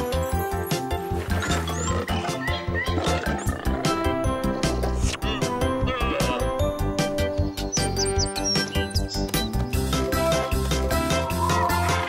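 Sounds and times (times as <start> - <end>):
cartoon music with steady beat: 0.0 - 12.0.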